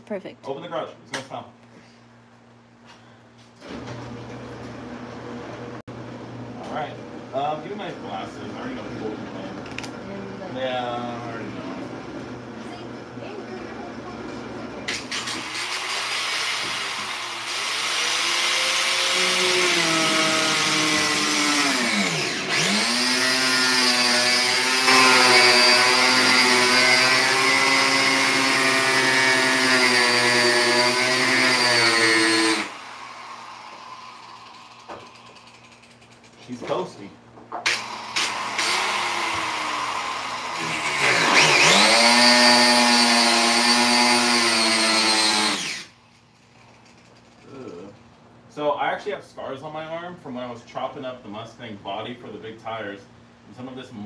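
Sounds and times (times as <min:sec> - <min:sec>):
angle grinder cutting plastic: 0:14.9 - 0:35.8, 0:37.6 - 0:46.0.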